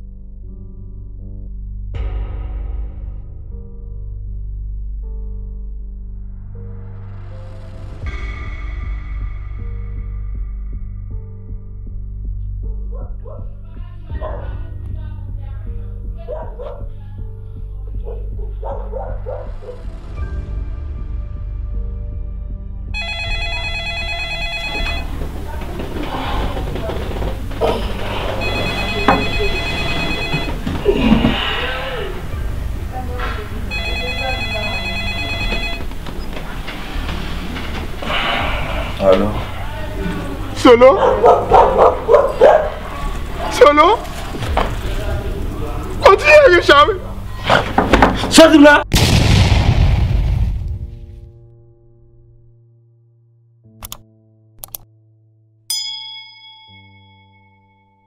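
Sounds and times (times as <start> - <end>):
notification bell chime: 23.0 - 25.2, 28.3 - 31.0, 33.7 - 35.9, 55.7 - 58.0
phone ringing: 23.0 - 31.6, 33.6 - 37.1.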